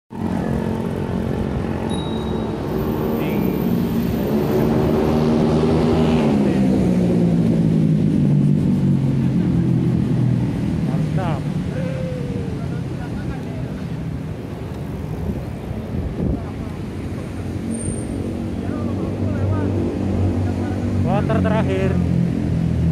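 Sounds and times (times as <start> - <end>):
low rumble of street noise: 0.1 - 22.9.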